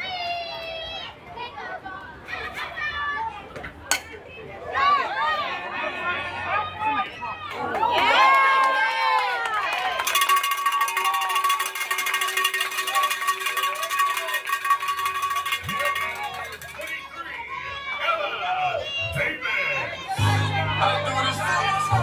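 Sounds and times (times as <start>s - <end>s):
children shouting and cheering: 0.0s - 3.5s, 13.6s - 22.0s.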